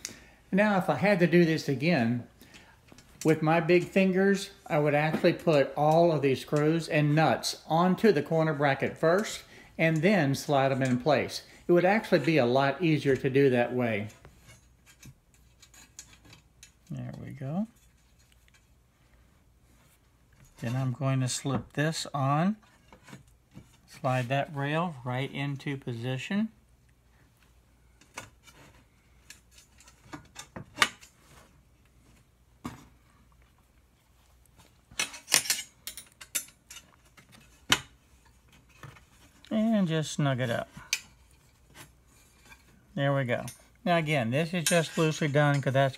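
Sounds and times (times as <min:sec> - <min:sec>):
small metal clicks and rubbing: 0:14.0 - 0:18.8, 0:28.0 - 0:31.2, 0:34.9 - 0:39.5.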